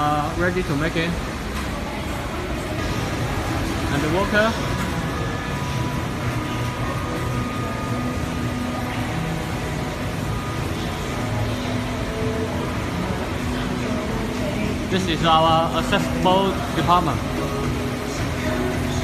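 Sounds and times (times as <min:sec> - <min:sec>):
faint steady tones: 0:00.0 - 0:19.0.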